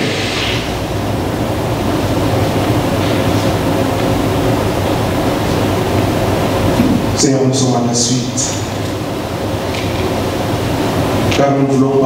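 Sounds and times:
background hiss: 0.0 - 12.0
low steady hum: 0.0 - 12.0.

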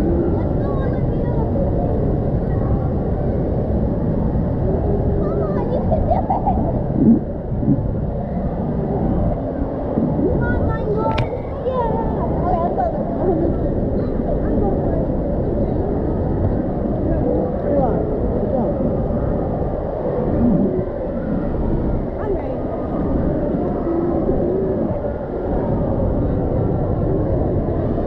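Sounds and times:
children's voices: 0.0 - 3.2, 4.8 - 7.5, 10.0 - 18.9
low rush of water: 0.0 - 28.0.

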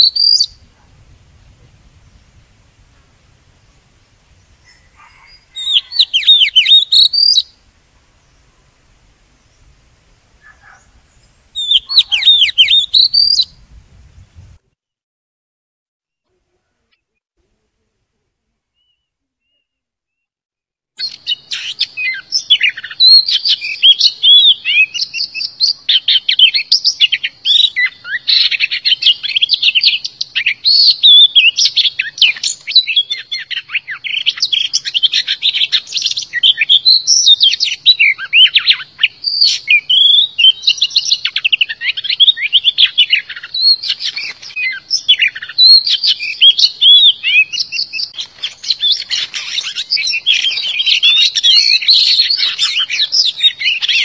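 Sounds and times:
magpie-robin singing: 0.0 - 0.9, 4.4 - 7.6, 10.4 - 13.6, 21.0 - 54.0.

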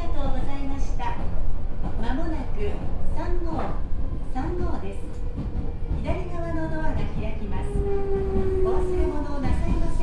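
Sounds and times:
train wheels rumbling on track: 0.0 - 10.0.

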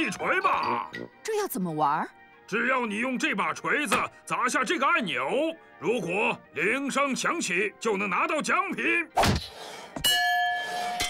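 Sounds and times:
metallic bell clang ringing: 10.0 - 11.0.

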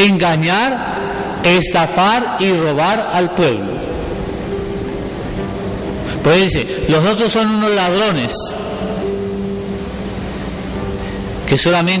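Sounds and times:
steady hiss: 0.3 - 12.0
low held hum: 0.7 - 11.7.

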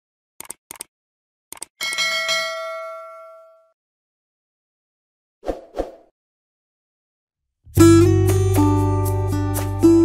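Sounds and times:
mouse-style clicks: 0.4 - 0.9, 1.5 - 1.7
bright bell chime: 1.8 - 3.8.

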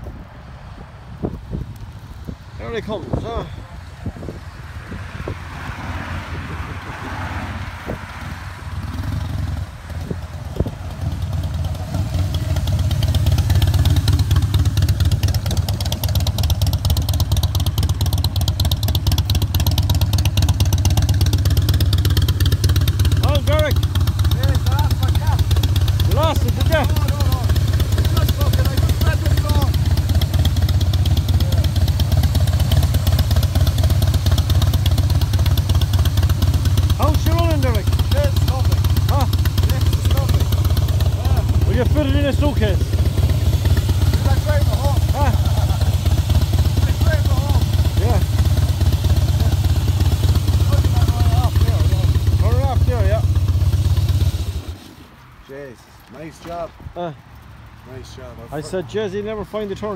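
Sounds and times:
passing road traffic: 0.0 - 59.9
motorcycle engine idling: 7.6 - 55.3.

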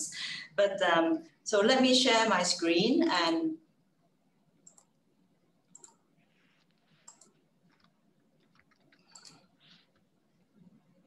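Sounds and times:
mouse and keyboard clicks: 5.7 - 6.0, 7.0 - 10.0.

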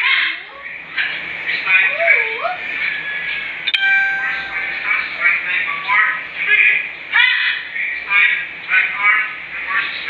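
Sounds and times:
metallic ding: 3.7 - 5.1.

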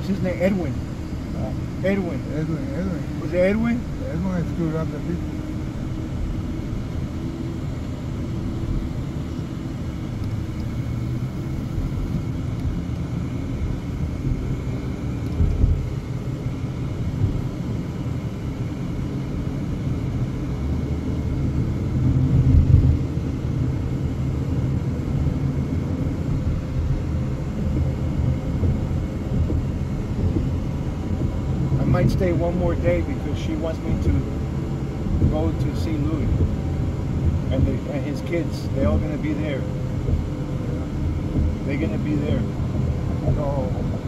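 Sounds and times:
car road and engine rumble: 0.0 - 44.0.

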